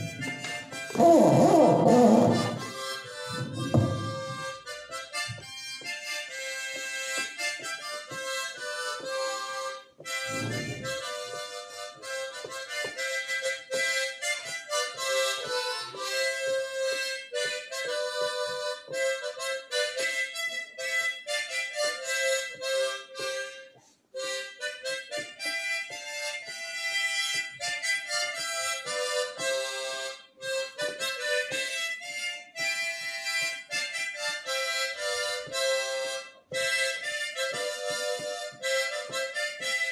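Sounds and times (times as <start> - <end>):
harmonica melody: 0.0 - 39.9.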